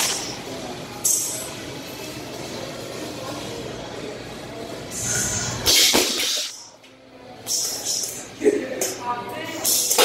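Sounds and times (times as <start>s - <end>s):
gym room noise: 0.0s - 10.0s.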